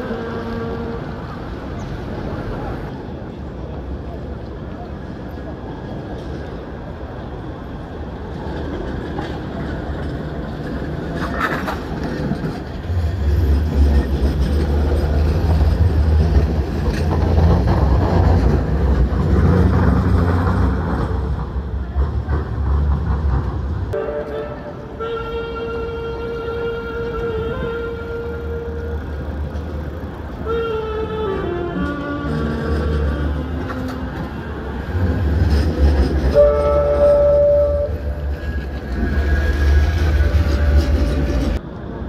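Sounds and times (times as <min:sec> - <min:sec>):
busy street noise: 0:00.0 - 0:42.0
tram rumbling past: 0:00.0 - 0:42.0.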